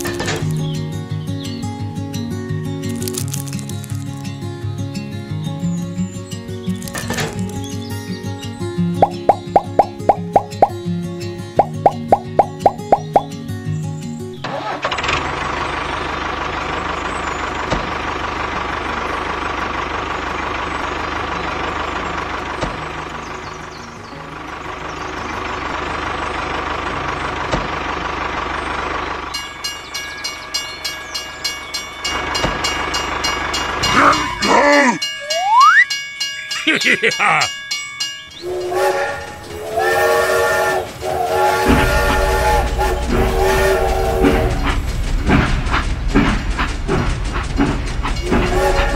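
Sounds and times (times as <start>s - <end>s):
small tractor engine running: 0.0s - 13.3s, 14.4s - 34.4s
plucked rhythmic music: 0.0s - 14.4s
rising whistle: 35.2s - 36.0s, 38.4s - 44.8s.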